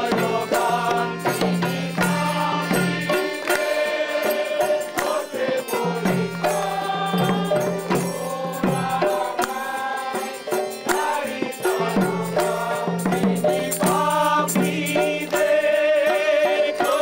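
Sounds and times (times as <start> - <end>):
group singing a devotional song: 0.0 - 17.0
hand cymbals: 0.0 - 17.0
percussion beat: 0.0 - 17.0.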